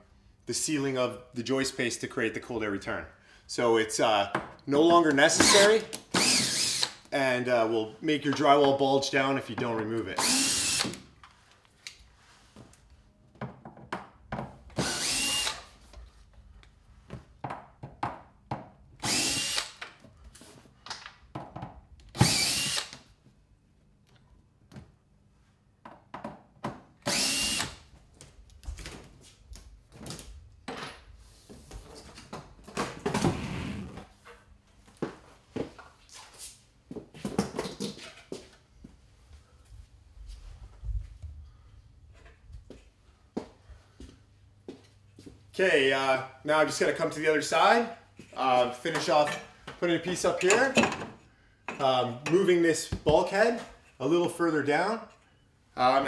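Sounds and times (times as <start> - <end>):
power drill bursts: 5.4 - 7.0, 10.2 - 11.0, 14.8 - 15.7, 19.0 - 19.8, 22.2 - 23.0, 27.0 - 27.8.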